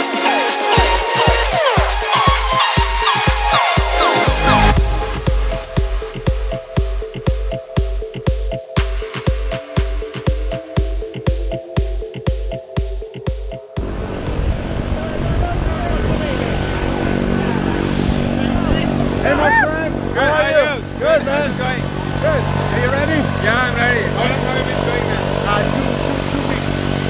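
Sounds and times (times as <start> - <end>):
electronic dance music: 0.0 - 15.8
aircraft engine drone: 0.0 - 27.0
voices talking: 14.9 - 27.0.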